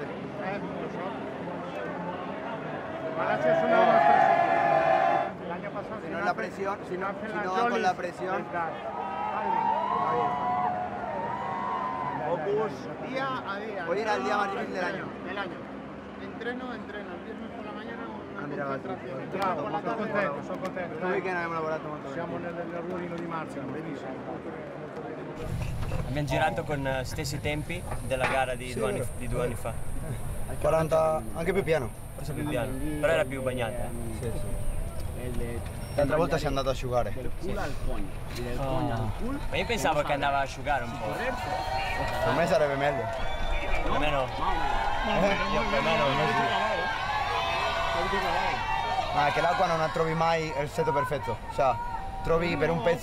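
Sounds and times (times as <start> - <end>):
crowd chatter: 0.0 - 53.0
men talking: 0.0 - 53.0.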